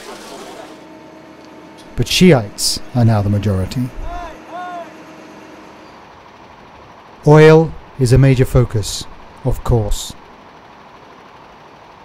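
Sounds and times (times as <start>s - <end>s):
distant traffic hum: 0.6s - 12.0s.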